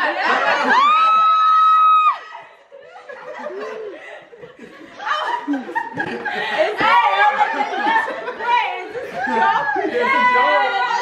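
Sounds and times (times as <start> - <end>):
group of people laughing: 0.0 - 11.0
people talking: 6.0 - 11.0.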